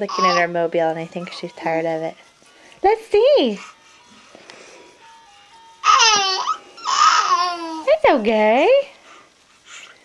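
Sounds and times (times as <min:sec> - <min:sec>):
baby squealing: 0:00.1 - 0:00.5, 0:05.8 - 0:07.9
music box tune: 0:00.2 - 0:08.2.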